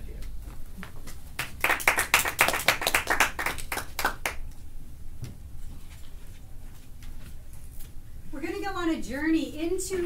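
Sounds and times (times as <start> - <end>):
hands clapping: 1.1 - 4.5.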